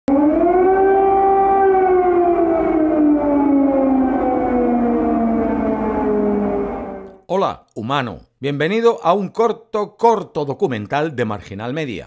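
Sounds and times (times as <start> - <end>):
air-raid siren wailing: 0.1 - 7.2.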